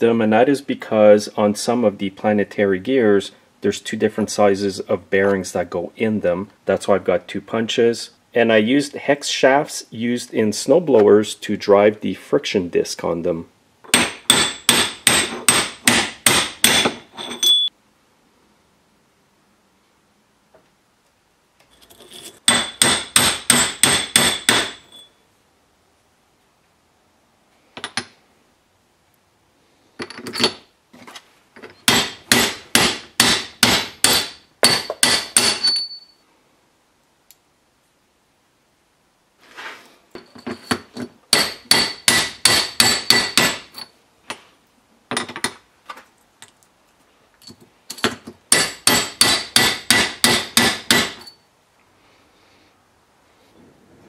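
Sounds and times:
hammer tapping metal punch: 13.9 - 17.7, 22.5 - 25.1, 31.8 - 36.0, 40.2 - 43.6, 47.9 - 51.4.

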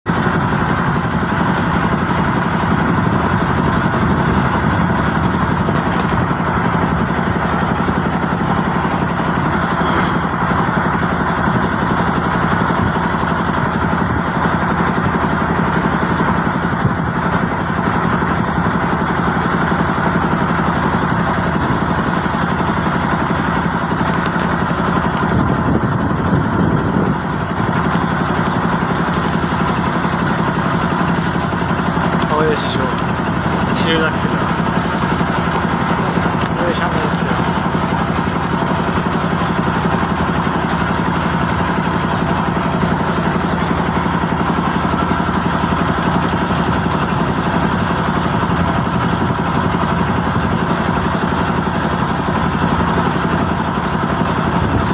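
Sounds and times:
boat engine droning: 0.0 - 54.9.

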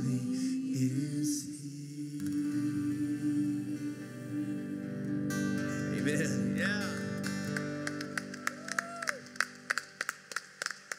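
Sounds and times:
hand claps: 6.8 - 10.9.

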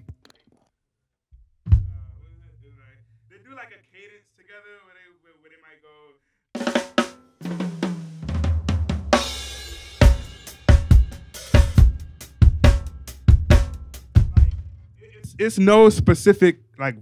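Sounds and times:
drum kit groove: 1.7 - 2.5, 6.6 - 16.5.

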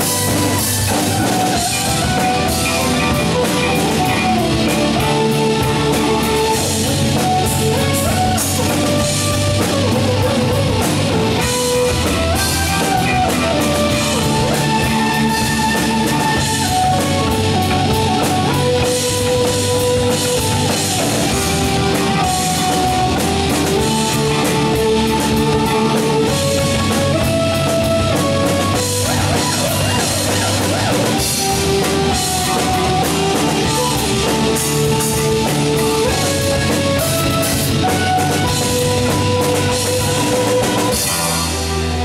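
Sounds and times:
drum kit with cymbals: 0.0 - 42.0
electric bass guitar: 0.0 - 42.0
held keyboard notes: 0.0 - 42.0.

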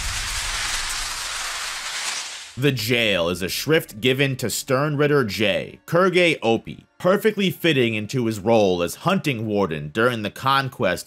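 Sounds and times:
low rumble: 0.0 - 1.9
rushing hiss of noise: 0.0 - 2.6.

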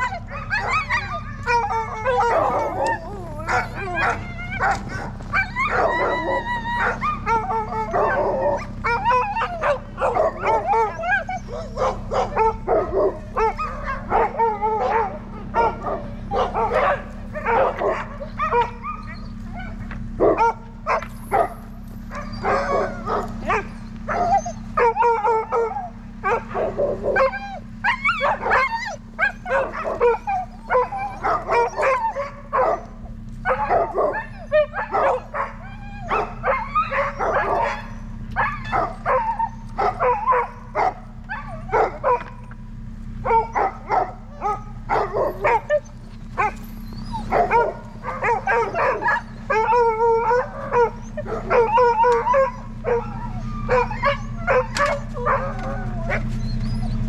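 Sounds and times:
dogs barking and howling: 0.0 - 57.0
steady low hum: 0.0 - 57.0.

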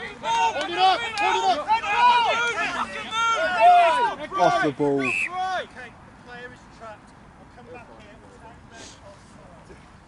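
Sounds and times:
voices shouting: 0.0 - 6.0.

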